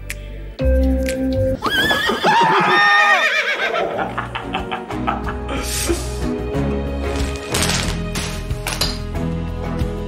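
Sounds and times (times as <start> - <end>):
background music: 0.0 - 10.0
horse whinny: 1.6 - 3.9.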